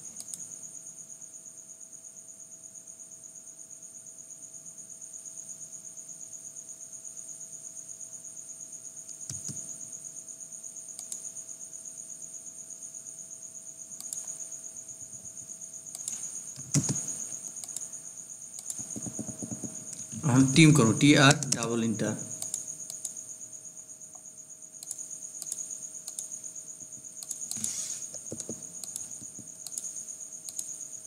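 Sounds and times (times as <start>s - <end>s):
insects trilling: 0.0s - 31.0s
computer mouse clicks: 0.2s - 0.5s, 9.1s - 9.7s, 11.0s - 11.4s, 14.0s - 14.5s, 15.9s - 17.9s, 18.6s - 20.1s, 21.4s - 21.7s, 22.3s - 23.2s, 24.8s - 26.4s, 27.2s - 30.8s
faint hum: 8.6s - 31.0s.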